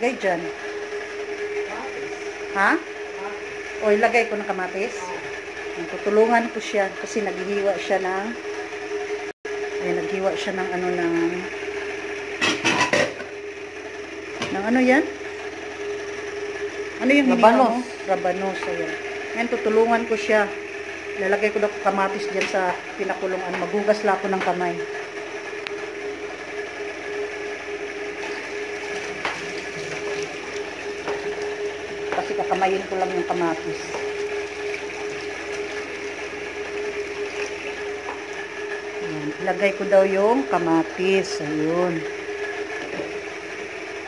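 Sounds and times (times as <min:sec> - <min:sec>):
steady mechanical hum: 0:00.0 - 0:44.0
water boiling in a pan: 0:26.2 - 0:39.8.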